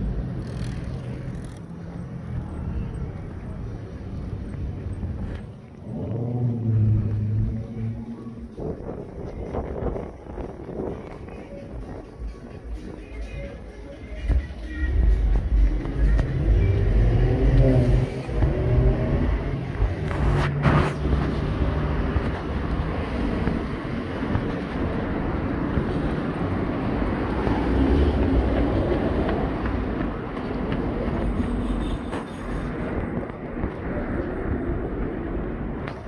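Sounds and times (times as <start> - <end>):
road traffic rumble: 0.0 - 36.0.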